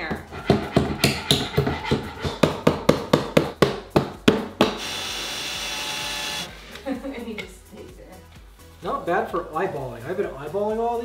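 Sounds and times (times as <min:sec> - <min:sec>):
hammer tapping on wood: 0:00.5 - 0:04.8
cordless drill boring into wood: 0:04.8 - 0:06.5.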